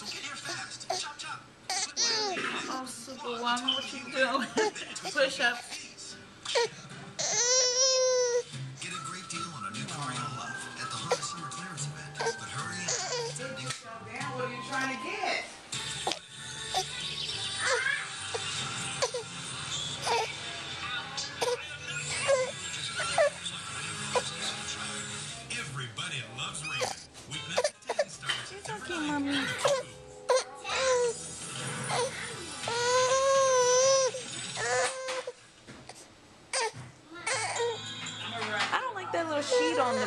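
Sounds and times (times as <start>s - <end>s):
faint background music or television: 0.0s - 40.0s
baby whining and grunting: 1.7s - 2.8s, 6.5s - 8.5s, 12.2s - 13.4s, 15.9s - 20.4s, 21.3s - 24.6s, 26.6s - 37.8s, 39.4s - 40.0s.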